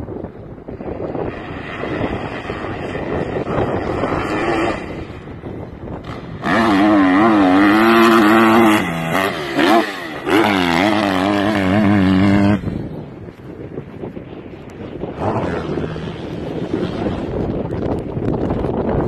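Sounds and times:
dirt bike engine revving: 0:01.1 - 0:12.9, 0:15.1 - 0:17.6.

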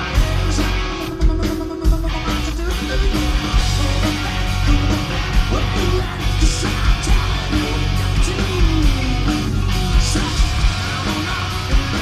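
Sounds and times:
bass guitar: 0:00.0 - 0:12.0
distorted electric guitars: 0:00.0 - 0:12.0
drums: 0:00.0 - 0:12.0
man singing lead vocal: 0:00.0 - 0:12.0.

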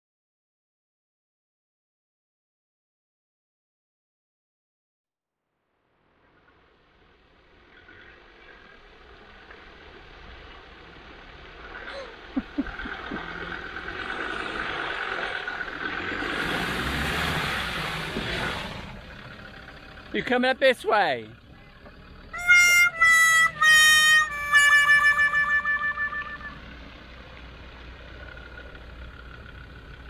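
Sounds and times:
vehicle engine driving on mud: 0:06.0 - 0:30.0.

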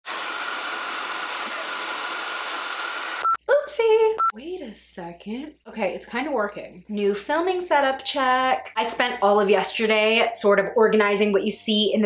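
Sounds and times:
hair dryer running: 0:00.0 - 0:03.2.

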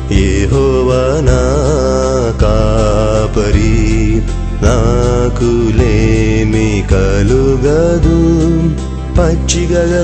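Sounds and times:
instrumental backing: 0:00.0 - 0:10.0
person singing: 0:00.0 - 0:10.0.

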